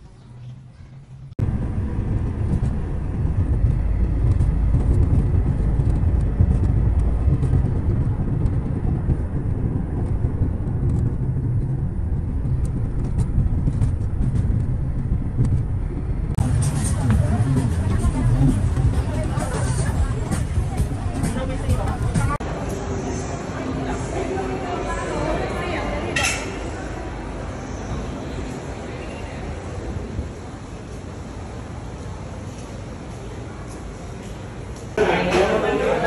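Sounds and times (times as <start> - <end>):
vehicle rumbling on city street: 0.0 - 36.0
crowd chatter: 16.4 - 36.0.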